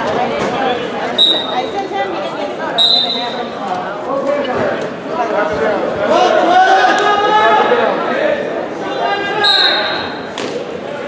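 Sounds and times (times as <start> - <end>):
voices calling out: 1.0 - 3.9, 8.8 - 10.4.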